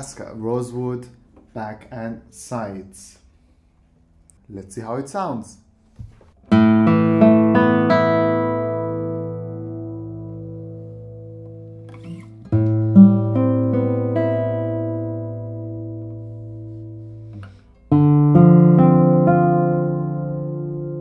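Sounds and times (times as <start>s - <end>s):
classical guitar plucked notes: 6.4s - 21.0s.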